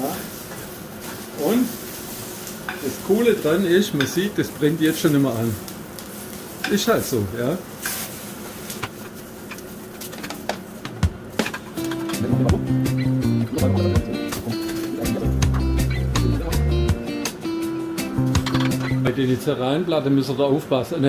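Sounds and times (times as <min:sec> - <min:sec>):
background music with bass line: 0:12.0 - 0:19.1
metal tongs scraping frying pan: 0:18.4 - 0:19.0.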